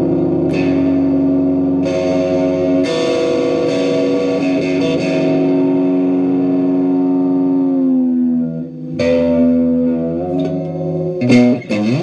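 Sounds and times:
electric guitar chords: 0:00.0 - 0:12.0.

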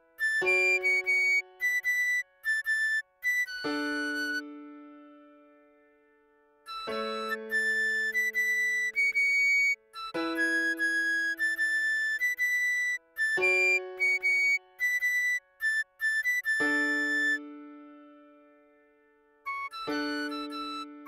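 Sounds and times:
piano chords: 0:00.0 - 0:21.0
recorder melody: 0:00.2 - 0:04.6, 0:06.7 - 0:17.6, 0:19.5 - 0:21.0.

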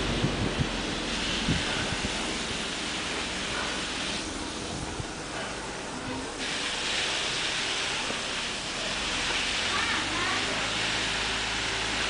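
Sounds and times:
water spraying from garden hose: 0:00.0 - 0:12.0.

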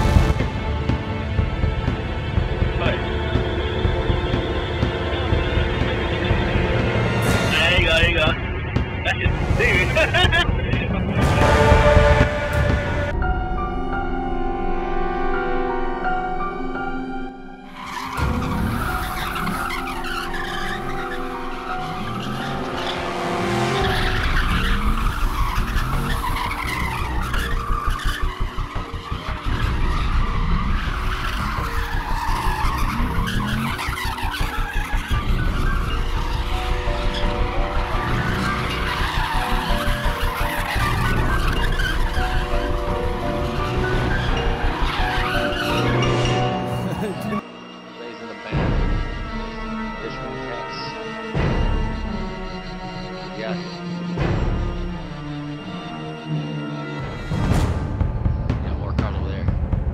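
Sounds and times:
background music with steady beat: 0:00.0 - 0:16.8
car tyres squealing: 0:17.6 - 0:58.0
engine revving hard: 0:18.1 - 0:47.3.

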